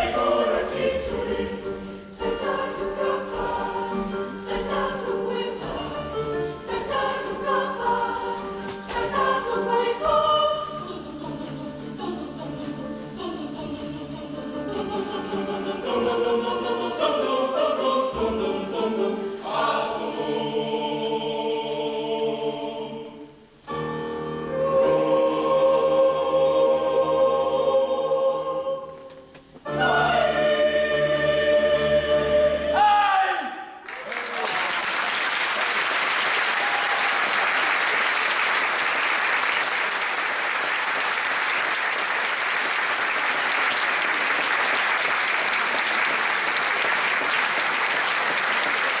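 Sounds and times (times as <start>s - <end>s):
youth choir singing: 0.0s - 33.6s
audience applause: 33.8s - 49.0s.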